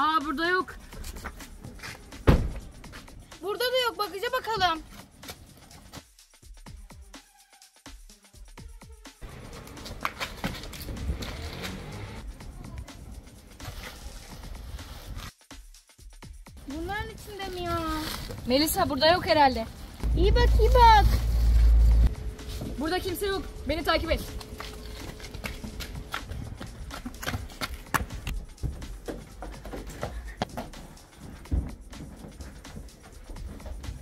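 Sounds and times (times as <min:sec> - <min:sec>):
background music: 0:00.0 - 0:34.0
running footsteps on pavement: 0:09.2 - 0:12.0, 0:20.0 - 0:34.0.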